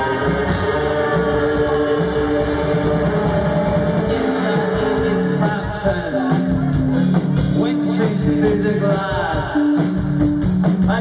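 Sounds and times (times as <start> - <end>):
drums: 0.0 - 11.0
rock band droning guitar chord: 0.0 - 11.0.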